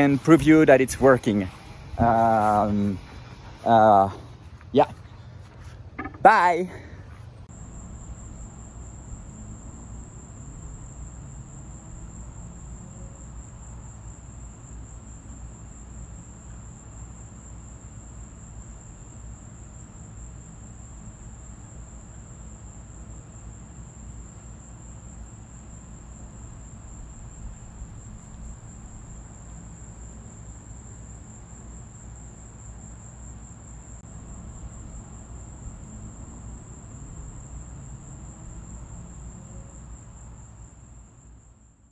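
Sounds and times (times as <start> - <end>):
high-pitched insect trill: 0.0 - 5.0, 7.4 - 41.9.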